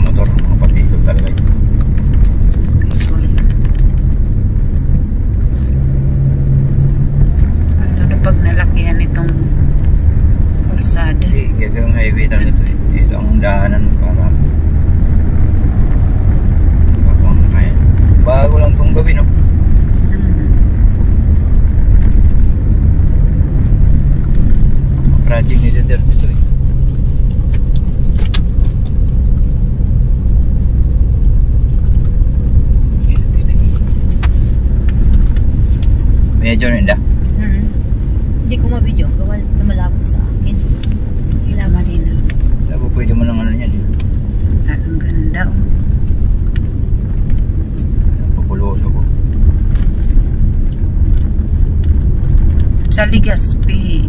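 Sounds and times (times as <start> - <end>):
car driving on concrete road: 0.0 - 54.0.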